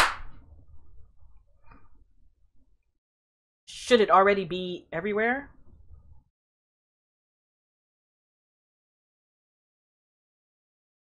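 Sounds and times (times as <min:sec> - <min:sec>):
hand claps: 0:00.0 - 0:00.3.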